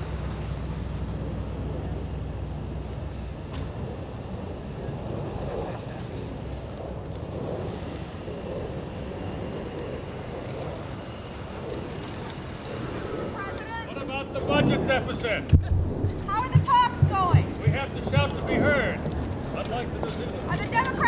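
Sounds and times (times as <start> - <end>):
steady low rumble: 0.0 - 21.0
murmuring voices: 1.2 - 21.0.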